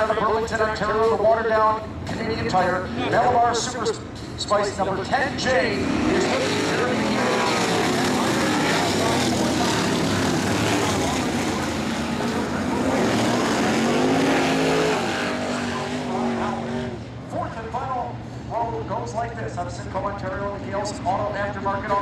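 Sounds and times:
race car engines passing: 0.0s - 22.0s.

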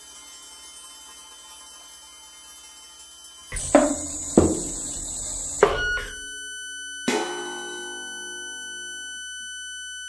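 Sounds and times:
faint steady tones: 3.5s - 10.0s
high pure tones: 3.5s - 10.0s.

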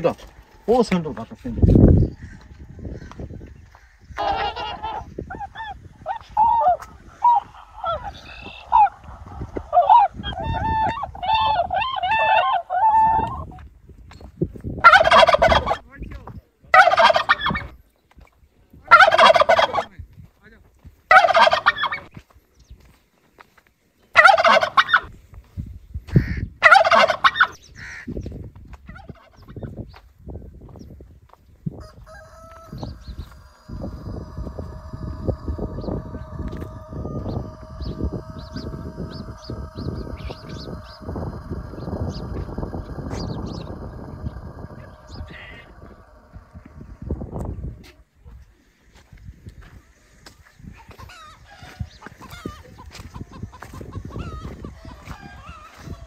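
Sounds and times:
drawn-out bird calls: 1.6s - 13.5s, 31.8s - 48.0s
bird chattering calls: 2.1s - 12.5s, 32.7s - 47.2s
steady droning tone: 32.5s - 48.1s.

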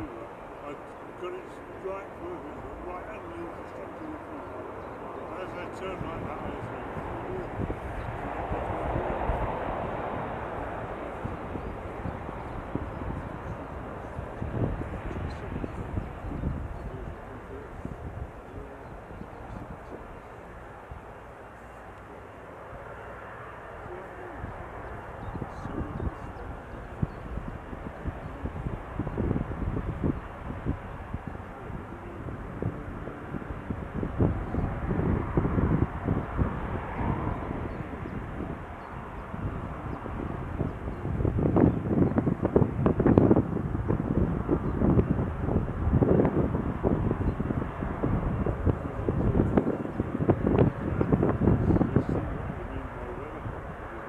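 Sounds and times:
jet airliner engines: 0.0s - 54.0s.

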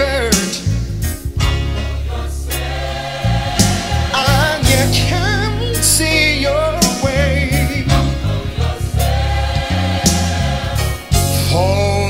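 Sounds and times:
bass line: 0.0s - 12.0s
gospel choir singing: 0.0s - 12.0s
drum and cymbal hits: 2.5s - 6.0s, 9.9s - 11.6s.

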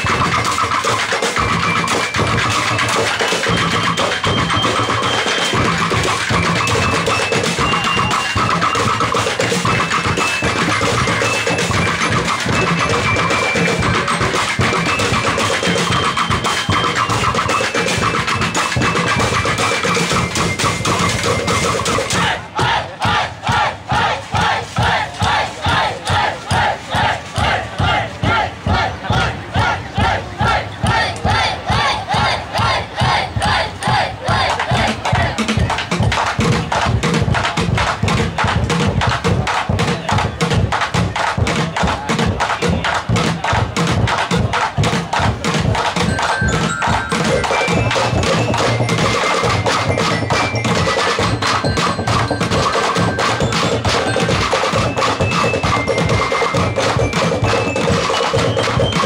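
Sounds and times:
percussion band beating barrels and drums: 0.0s - 59.0s.

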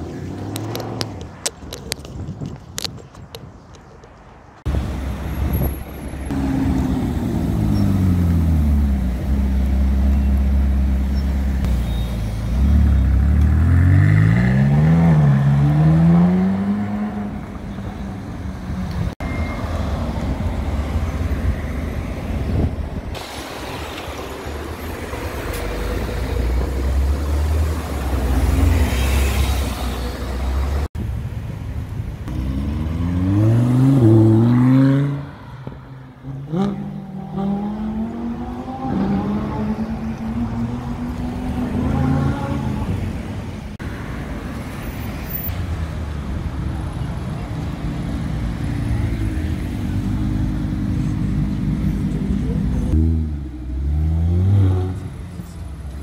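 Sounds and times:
street traffic: 0.0s - 56.0s.

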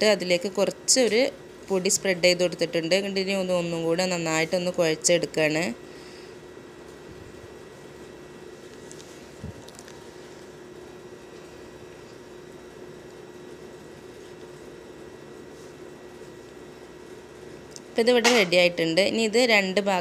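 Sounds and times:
background hum and hiss: 0.0s - 20.0s.

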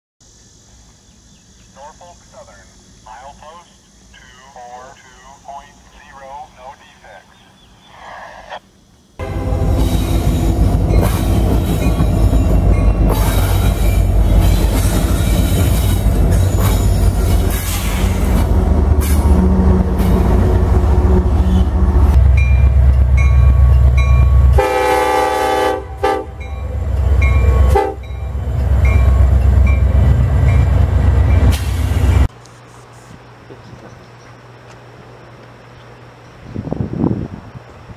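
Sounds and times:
diesel locomotive rumble: 8.8s - 37.9s
train wheels on rail: 9.2s - 25.1s, 26.1s - 32.3s
train air horns: 24.4s - 26.8s, 27.4s - 28.1s.

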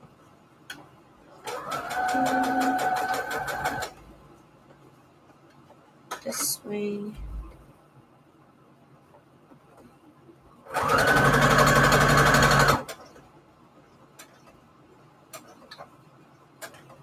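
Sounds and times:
sewing machine stitching: 1.4s - 4.0s, 10.7s - 13.1s.

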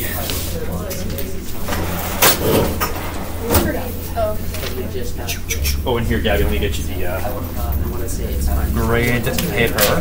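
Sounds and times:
indistinct voices: 0.0s - 10.0s
low steady hum: 0.0s - 10.0s
clattering knocks: 1.7s - 3.9s.

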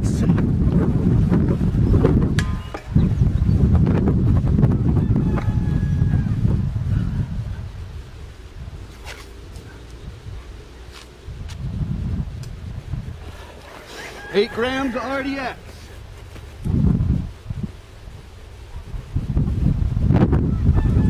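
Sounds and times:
wind noise on microphone: 0.0s - 21.0s.

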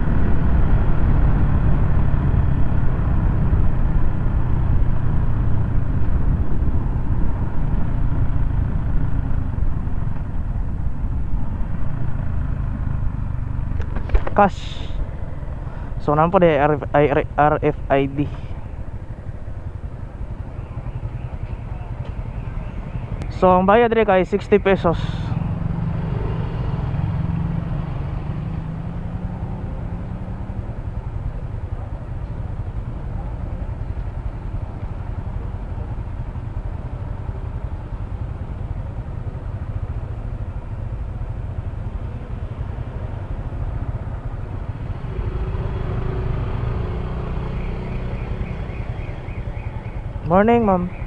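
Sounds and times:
scooter engine idling: 18.4s - 23.6s.

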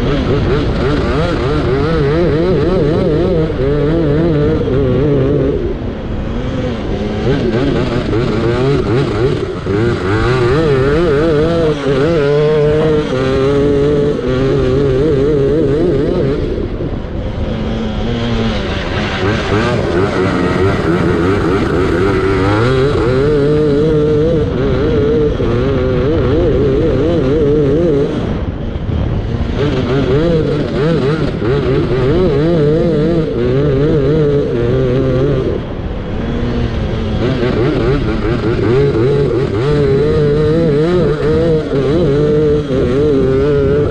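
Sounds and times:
racing lawnmower engine revving: 0.0s - 43.9s.

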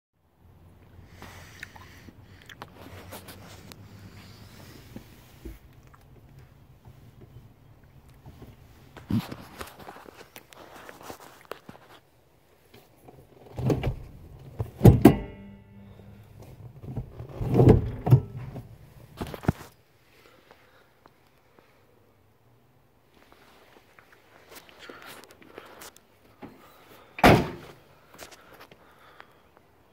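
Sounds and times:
faint rustles: 0.8s - 14.8s, 15.6s - 22.2s, 23.0s - 29.9s
car door slamming: 14.8s - 15.8s, 27.2s - 27.8s.

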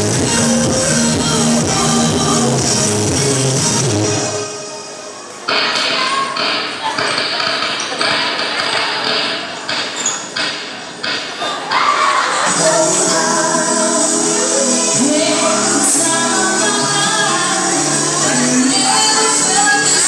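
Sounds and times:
dance music over sound system: 0.0s - 4.9s, 12.5s - 20.0s.

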